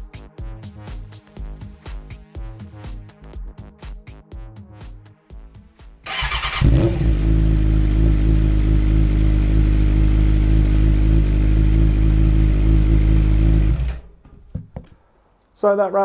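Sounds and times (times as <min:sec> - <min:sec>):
starter motor cranking: 0:06.1 - 0:07.2
motorcycle engine idling: 0:06.1 - 0:14.1.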